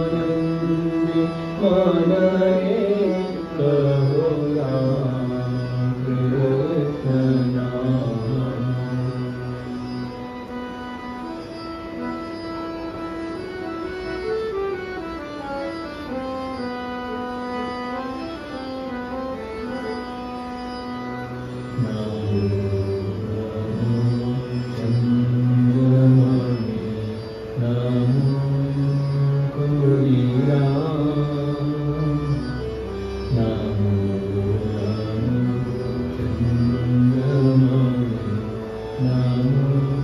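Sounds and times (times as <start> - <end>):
harmonium melody: 0.0 - 40.0.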